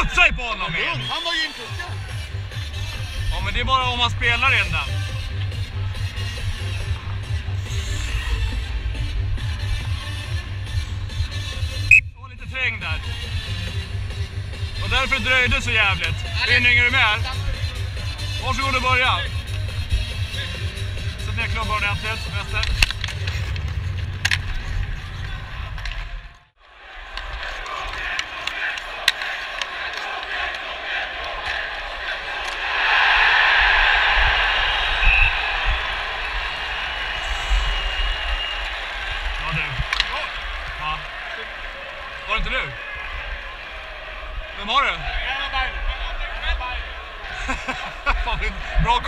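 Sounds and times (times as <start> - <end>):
arena crowd noise: 0.0 - 10.8, 11.9 - 23.6, 24.2 - 49.0
hockey sticks and puck knocking: 22.0 - 26.2, 27.1 - 31.7
skates scraping ice: 22.2 - 26.2, 27.1 - 32.6.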